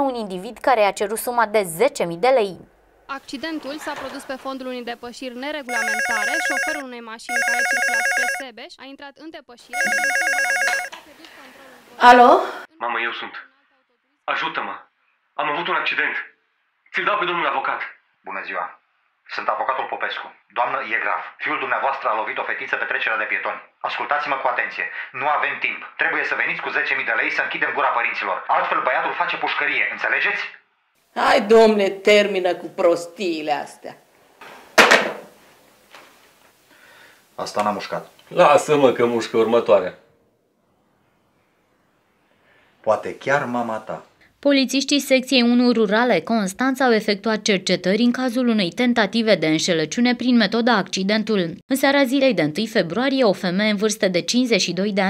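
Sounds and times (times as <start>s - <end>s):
telephone ringing with electronic trill: 5.7s - 8.5s, 9.7s - 10.9s.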